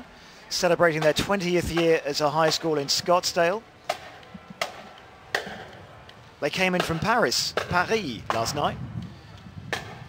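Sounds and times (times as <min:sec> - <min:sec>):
faint crowd noise: 0:00.0 - 0:10.0
street noise: 0:00.0 - 0:10.0.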